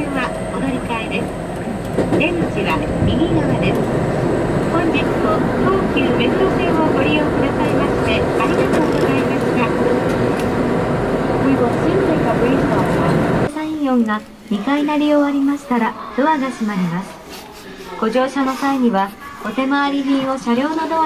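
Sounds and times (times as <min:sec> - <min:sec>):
train running: 0:00.0 - 0:13.5.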